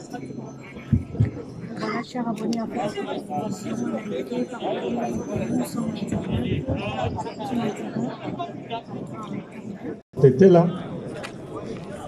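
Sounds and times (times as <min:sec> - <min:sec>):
voices over a crowd: 0:00.0 - 0:12.0.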